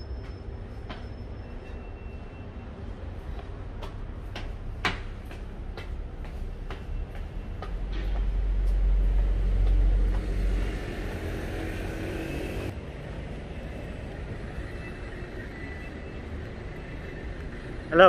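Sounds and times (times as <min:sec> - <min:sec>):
street traffic hum: 0:00.0 - 0:18.0
heavy vehicle passing rumble: 0:07.3 - 0:18.0.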